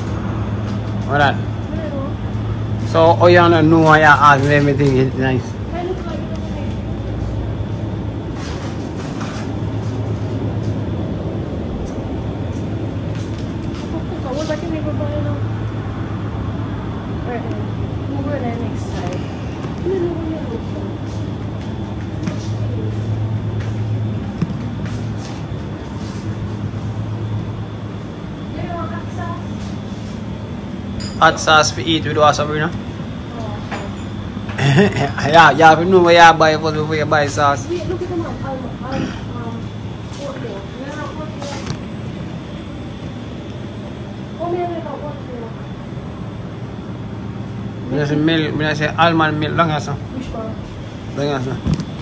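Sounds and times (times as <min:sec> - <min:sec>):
low hum of refrigerators: 0:00.0 - 0:52.0.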